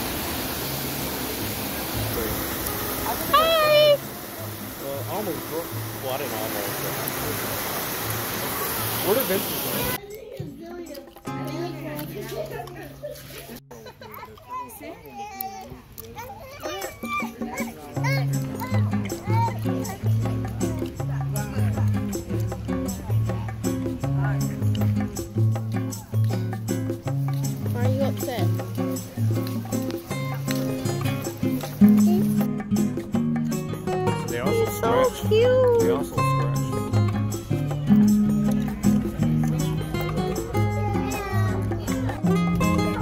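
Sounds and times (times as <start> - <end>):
young children chattering: 2.0 - 4.8, 6.8 - 32.8, 33.4 - 43.0
background music with bass line: 17.4 - 43.0.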